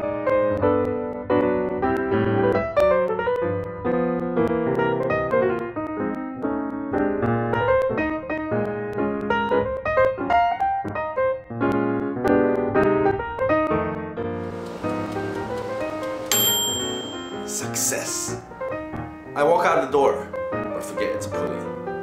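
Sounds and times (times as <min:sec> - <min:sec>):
piano music: 0:00.0 - 0:22.0
high steady tone: 0:14.5 - 0:18.4.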